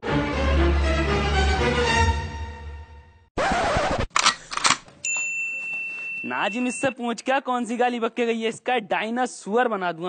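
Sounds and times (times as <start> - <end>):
record scratching: 3.4 - 4.2.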